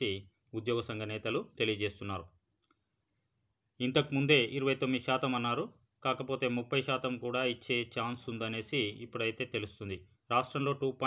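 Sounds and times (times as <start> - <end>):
man narrating: 0.0 - 2.3, 3.8 - 11.0.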